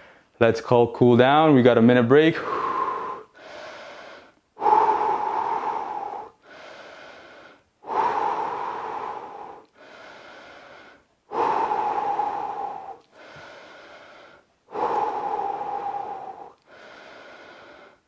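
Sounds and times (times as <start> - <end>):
man breathing deeply: 2.4 - 18.0.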